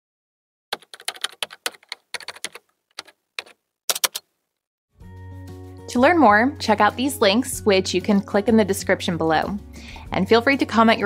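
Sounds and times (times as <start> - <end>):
typing on a keyboard: 0.7 - 4.3.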